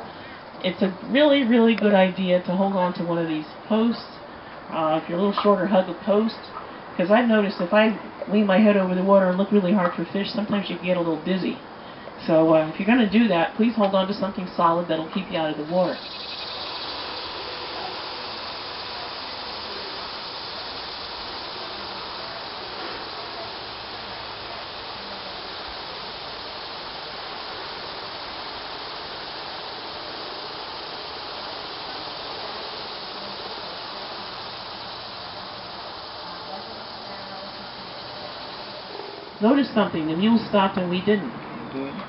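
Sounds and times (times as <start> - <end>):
insect chorus: 0.0 - 41.1.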